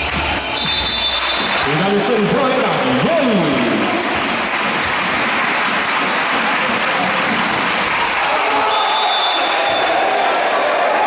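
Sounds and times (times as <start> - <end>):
spectators applauding: 0.0 - 11.0.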